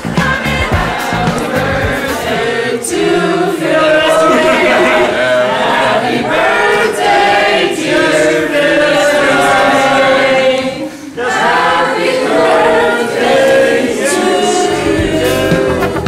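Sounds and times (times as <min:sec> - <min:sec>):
group singing unaccompanied: 0:00.0 - 0:16.0.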